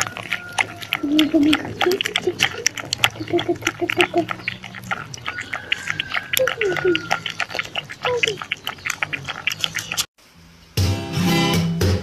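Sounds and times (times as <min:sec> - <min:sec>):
puppy lapping milk: 0:00.0 - 0:10.1
puppy squeaking: 0:00.0 - 0:10.1.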